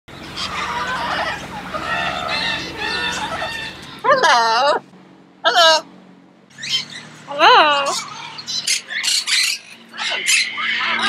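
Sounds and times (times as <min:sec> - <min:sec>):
parrots squawking: 0:00.1 - 0:05.9, 0:06.5 - 0:11.0.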